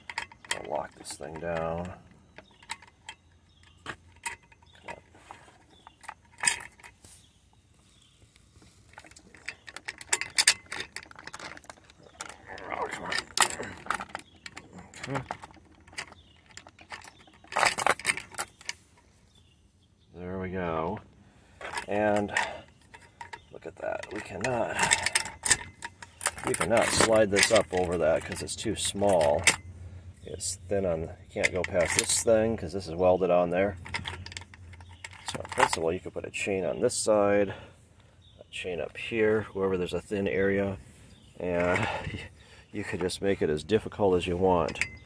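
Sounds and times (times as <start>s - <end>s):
padlock rattling against chain: 0.0s - 7.0s, 8.9s - 19.4s, 21.6s - 29.7s, 30.4s - 32.6s, 33.4s - 36.0s, 44.5s - 45.0s
chain links clinking: 0.0s - 7.1s, 8.9s - 19.0s, 21.6s - 32.7s, 33.3s - 36.2s, 44.6s - 45.0s.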